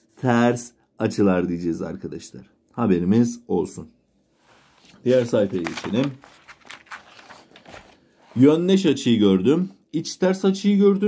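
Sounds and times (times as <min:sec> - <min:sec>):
paper page rustling: 0:04.6 - 0:08.5.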